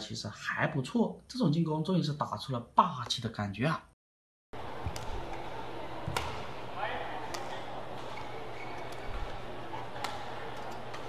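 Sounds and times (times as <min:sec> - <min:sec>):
arena ambience: 0:04.6 - 0:11.0
racket hitting shuttlecock: 0:04.7 - 0:11.0
shoe squeak: 0:07.5 - 0:10.0.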